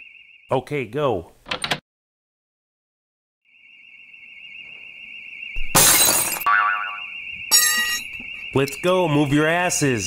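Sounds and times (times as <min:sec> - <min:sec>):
burglar alarm warbling: 0:03.5 - 0:10.0
glass shattering: 0:05.7 - 0:08.2.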